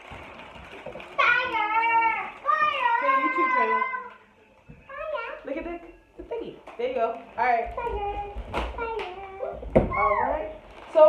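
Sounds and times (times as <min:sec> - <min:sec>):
child speaking: 0:01.2 - 0:04.1, 0:04.9 - 0:05.5.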